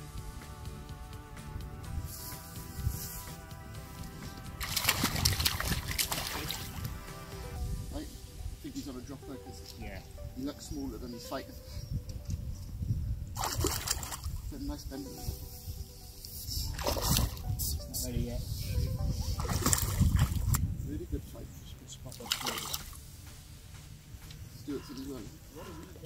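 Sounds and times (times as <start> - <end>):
fish splashing at water surface: 4.6 - 6.8, 22.2 - 23.0
wind buffeting microphone: 4.7 - 8.7, 9.3 - 26.0.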